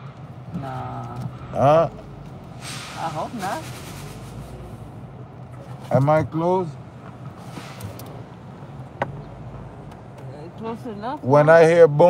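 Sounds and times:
car engine hum: 0.0s - 12.0s.

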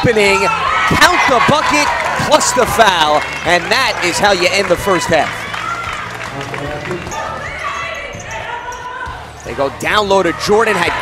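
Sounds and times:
voices echoing in a gym: 0.0s - 11.0s.

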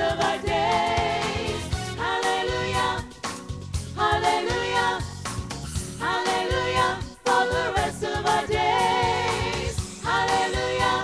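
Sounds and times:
women's gospel group singing: 0.0s - 3.2s, 3.9s - 5.2s, 6.0s - 11.0s
instrumental backing: 0.0s - 11.0s.

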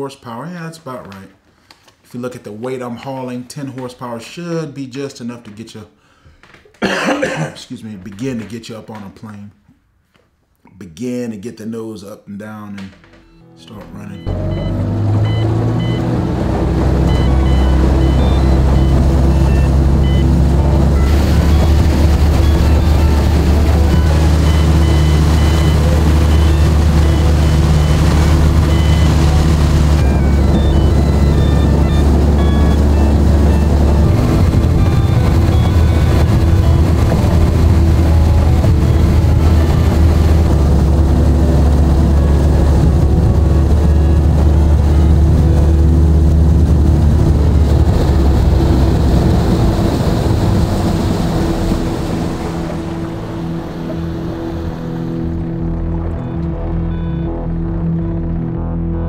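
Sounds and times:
hull and water noise: 14.3s - 58.4s
outboard motor running: 14.3s - 59.0s.

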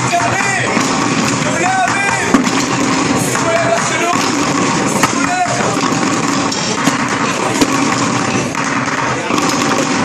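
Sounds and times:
drumsticks beating plastic buckets: 0.0s - 10.0s.

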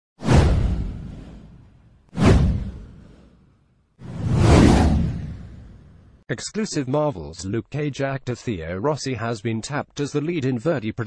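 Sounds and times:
whoosh sound effects: 0.2s - 3.4s, 4.0s - 6.1s.

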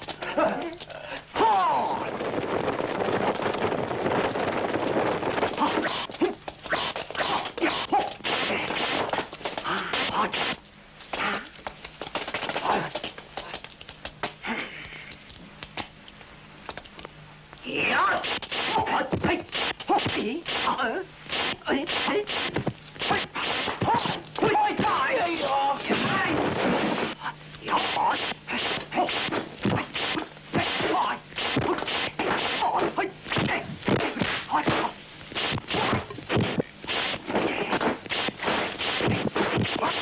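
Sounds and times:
film soundtrack hiss: 0.0s - 40.0s
noisy rushes of sound: 1.4s - 10.6s
fighters yelling and grunting: 23.0s - 26.4s, 27.6s - 29.9s.

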